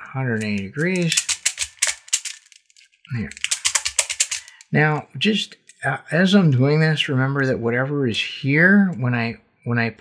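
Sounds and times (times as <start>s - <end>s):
puzzle beads rattling and clicking: 0.4s - 4.8s.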